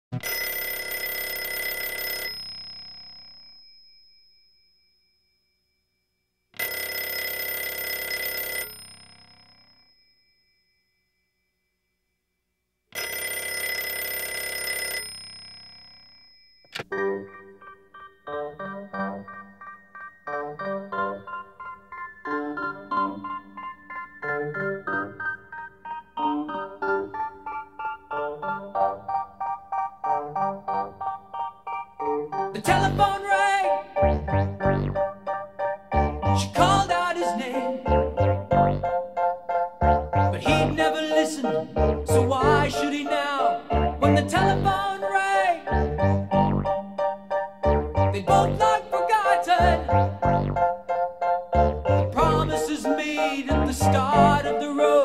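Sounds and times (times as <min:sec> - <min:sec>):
telephone bell ringing: 0:00.2 - 0:05.2, 0:06.6 - 0:11.1, 0:12.9 - 0:16.9
keyboard playing detached chords: 0:16.8 - 0:55.0.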